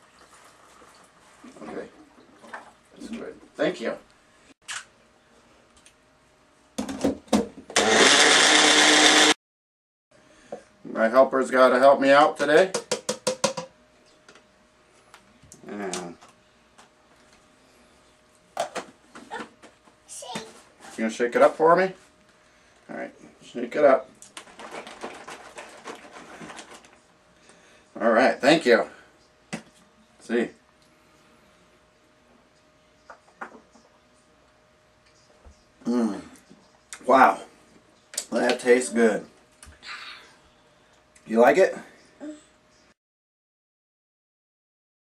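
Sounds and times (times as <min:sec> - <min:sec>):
juicer motor running: 0:07.7 - 0:09.4
shaker cup being shaken: 0:24.3 - 0:27.0.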